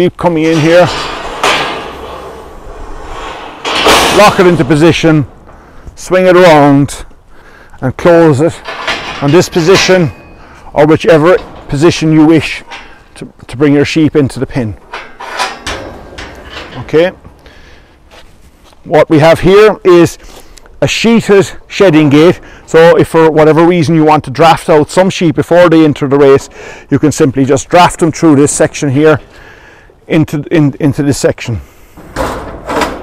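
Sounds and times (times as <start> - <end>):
metal gate sliding with rattling scrape: 0.0 - 33.0.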